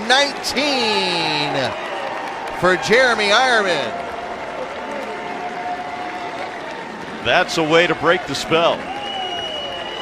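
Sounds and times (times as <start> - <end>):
crowd applauding: 0.0 - 10.0.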